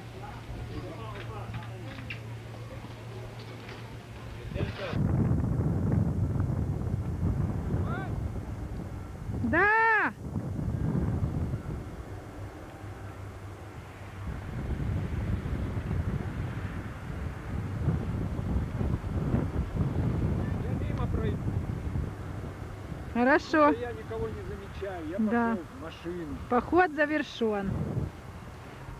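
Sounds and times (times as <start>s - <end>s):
low outdoor rumble: 0.0s - 28.9s
wind buffeting microphone: 0.0s - 28.9s.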